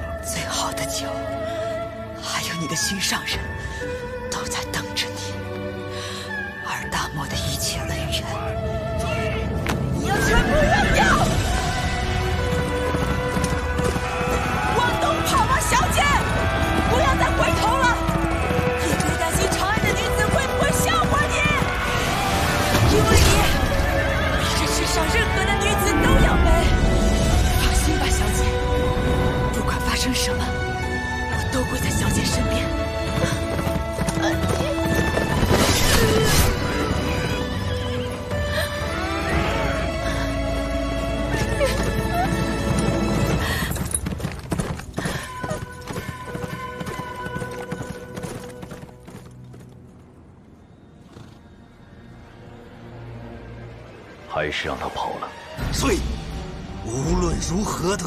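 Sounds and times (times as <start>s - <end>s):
background music: 0.0s - 58.0s
hooves clattering: 11.8s - 22.2s, 32.4s - 35.7s, 40.4s - 50.2s
horse galloping hoofbeats: 11.8s - 22.2s, 32.4s - 35.6s, 40.7s - 50.2s, 51.0s - 51.6s.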